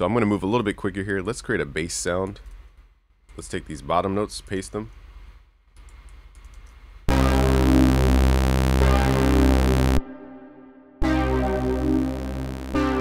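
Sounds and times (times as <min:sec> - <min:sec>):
faint mouse clicks: 0:05.8 - 0:06.8
synthesizer chord with deep bass: 0:07.1 - 0:13.0.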